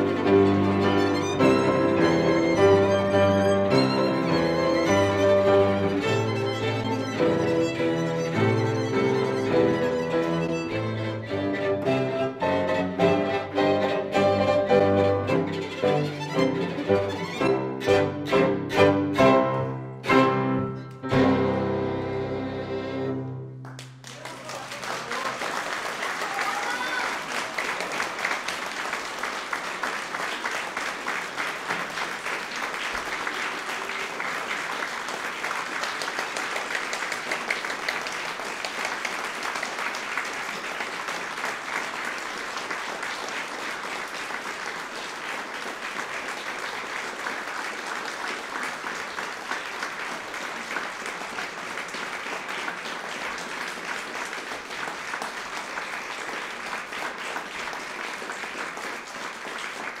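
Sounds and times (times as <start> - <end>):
audience applauding: 0.0 - 60.0.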